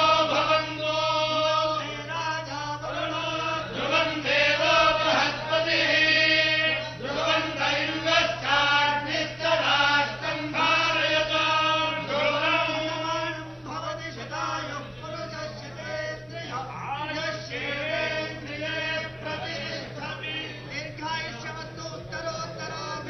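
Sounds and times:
group chanting in unison: 0:00.0 - 0:02.0, 0:02.8 - 0:12.9, 0:17.5 - 0:20.5
steady low hum: 0:00.0 - 0:23.0.

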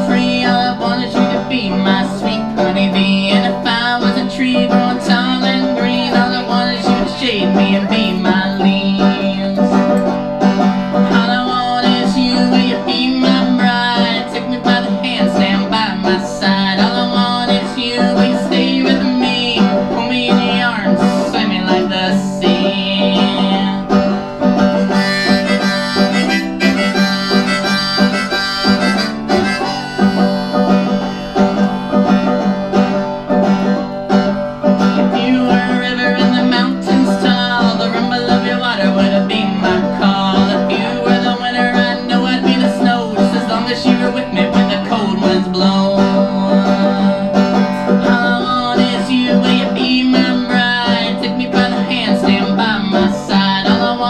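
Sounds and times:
banjo picking: 0:00.0 - 0:54.0
bending melody line: 0:00.0 - 0:54.0.

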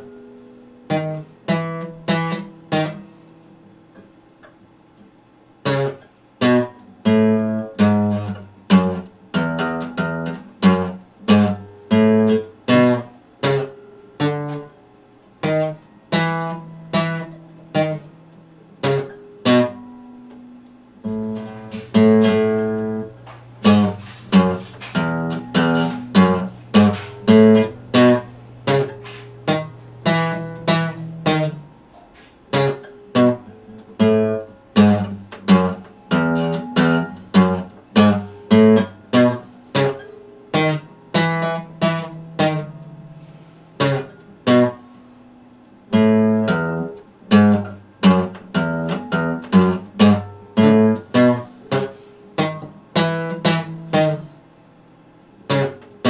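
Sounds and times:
acoustic guitar picked slowly: 0:00.0 - 0:56.0.

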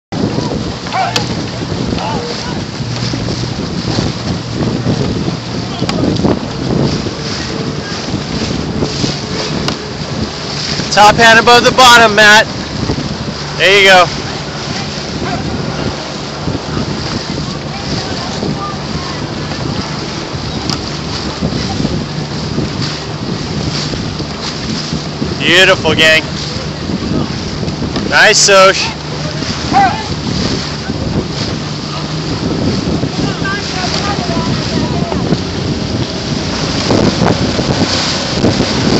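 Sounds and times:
small boat motor running: 0:00.1 - 0:38.9
water splashing: 0:00.1 - 0:38.9
wind buffeting microphone: 0:00.1 - 0:38.9.

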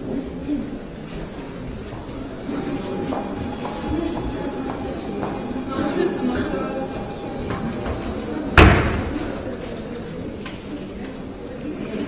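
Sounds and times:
murmur of people talking: 0:00.0 - 0:12.0
loud bang echoing in hall: 0:02.5 - 0:09.6.

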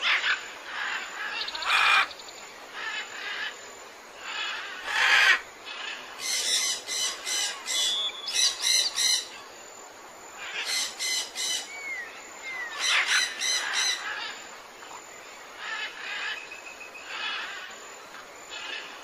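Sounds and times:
birds calling: 0:00.0 - 0:03.6, 0:04.2 - 0:09.5, 0:10.4 - 0:17.8.

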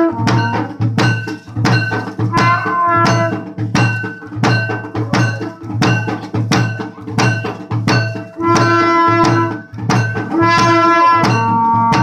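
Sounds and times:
drum struck in steady beat: 0:00.0 - 0:12.0
ringing metallic tones: 0:00.0 - 0:12.0.

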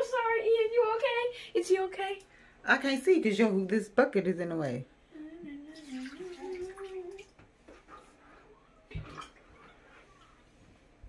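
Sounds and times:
water splashing and trickling: 0:05.7 - 0:07.4.

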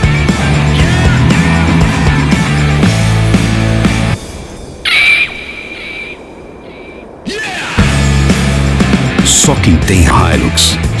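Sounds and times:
rock music with heavy beat: 0:00.0 - 0:04.2, 0:07.8 - 0:11.0
eagle cry sound effect: 0:04.8 - 0:07.9.

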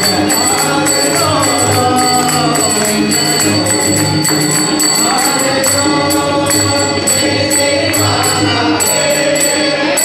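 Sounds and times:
person singing long gliding notes: 0:00.0 - 0:10.0
steady held accompaniment: 0:00.0 - 0:10.0.

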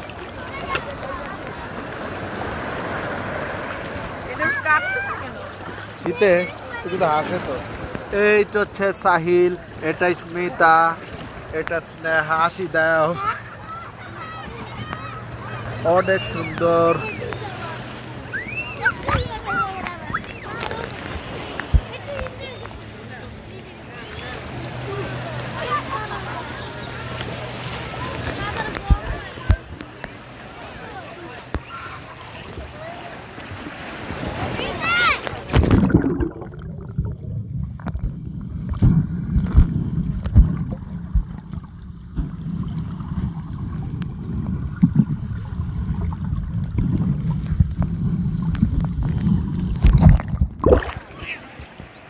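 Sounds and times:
sea wash: 0:00.0 - 0:52.0
underwater rumble of moving water: 0:00.0 - 0:52.0
wind: 0:00.0 - 0:52.0
boat engine humming: 0:12.5 - 0:52.0.

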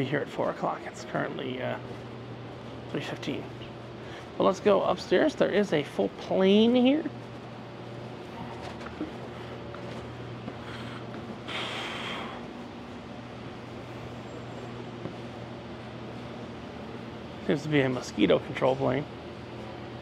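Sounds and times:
air conditioning hum: 0:00.0 - 0:20.0.

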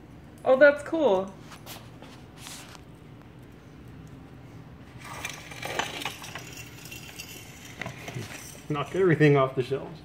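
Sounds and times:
tray clinks: 0:05.0 - 0:08.9.

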